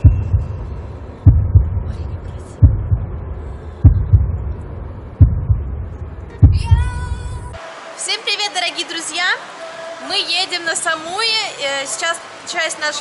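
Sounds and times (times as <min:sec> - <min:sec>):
deep double thumps bass pulse: 0:00.0 - 0:07.6.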